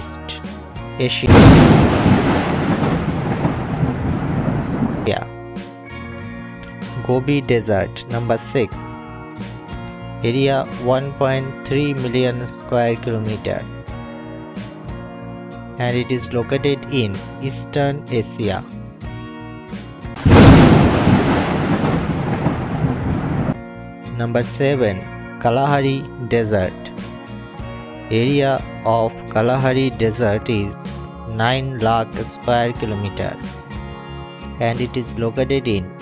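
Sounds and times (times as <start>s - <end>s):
thunder-like rumble: 1.3s - 5.1s, 20.2s - 23.6s.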